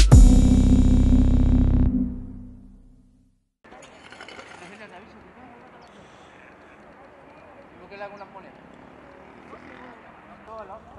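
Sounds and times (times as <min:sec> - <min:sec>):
intro music sting: 0:00.0 - 0:02.9
faint voices talking: 0:03.7 - 0:10.9.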